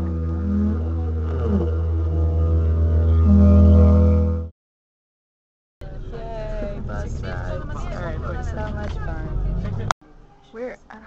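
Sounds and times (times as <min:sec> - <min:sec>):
didgeridoo drone: 0:00.0 - 0:04.5.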